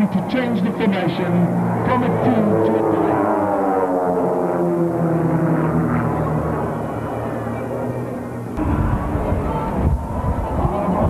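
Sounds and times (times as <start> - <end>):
biplane piston engines droning: 0.0 - 11.0
low rumble: 8.6 - 11.0.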